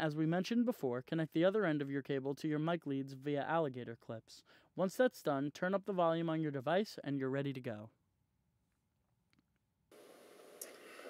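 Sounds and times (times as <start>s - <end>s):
room tone hiss and hum: 9.9s - 11.0s.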